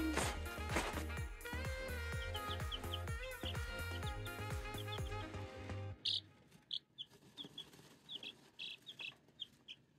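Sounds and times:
background music: 0.0 - 6.5
baby chicks peeping: 0.0 - 9.9.

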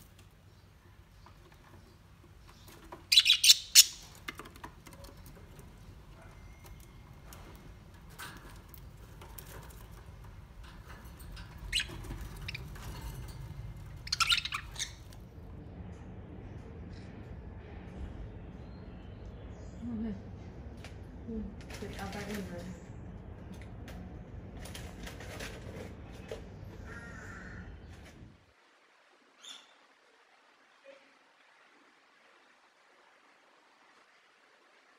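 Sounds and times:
budgerigars chirping: 2.5 - 4.1, 11.7 - 12.9, 14.0 - 15.1.

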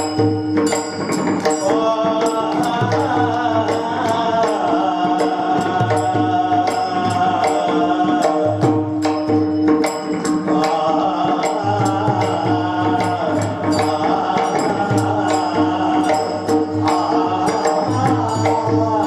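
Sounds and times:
hand cymbals struck: 0.0 - 19.0
person singing devotional melody: 0.0 - 19.0.

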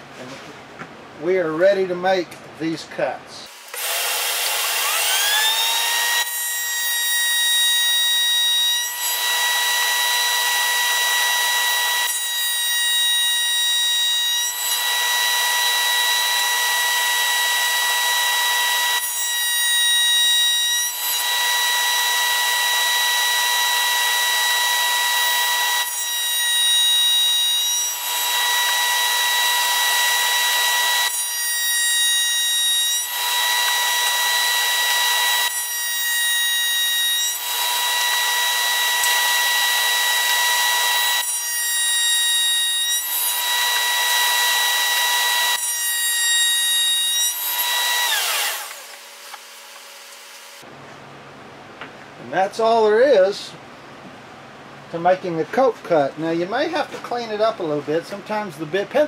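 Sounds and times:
router whining: 3.5 - 31.3, 31.9 - 50.7
router bit cutting wood: 3.5 - 50.7.

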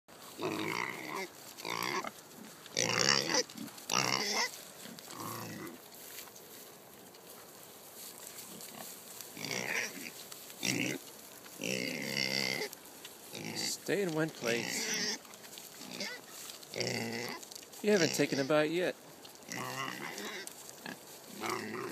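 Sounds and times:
pigs calling: 0.2 - 5.8, 8.4 - 21.9.

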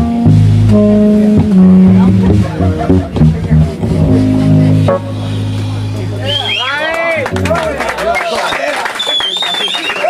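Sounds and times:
electric bass: 0.0 - 8.2.

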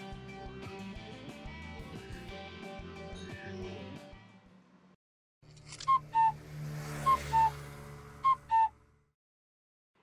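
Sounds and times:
short two-note whistles: 8.3 - 8.7.

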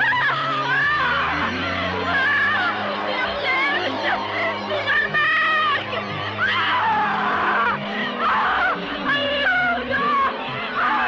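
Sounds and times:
shrill screaming voices: 0.0 - 11.0.

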